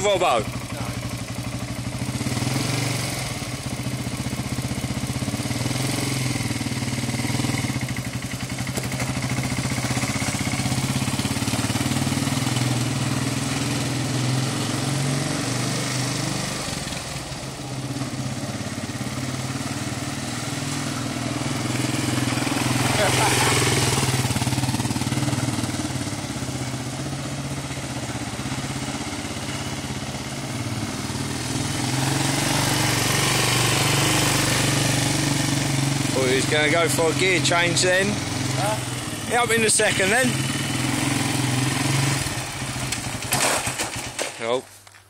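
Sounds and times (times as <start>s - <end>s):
quad bike engine running: 0.0s - 44.6s.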